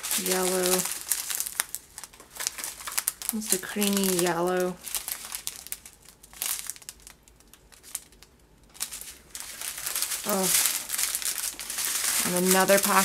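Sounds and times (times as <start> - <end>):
plastic packets crinkling: 0.0 - 13.0.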